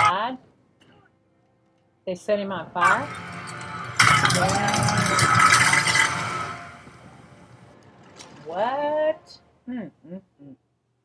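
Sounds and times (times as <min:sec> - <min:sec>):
fire burning: 0:02.8 - 0:08.7.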